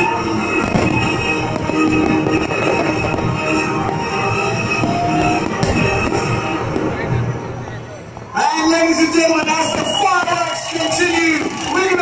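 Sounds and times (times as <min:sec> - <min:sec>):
background music: 0:00.0 - 0:12.0
fireworks crackling and rumbling: 0:00.0 - 0:12.0
firework bang: 0:00.6 - 0:04.1, 0:04.7 - 0:07.0.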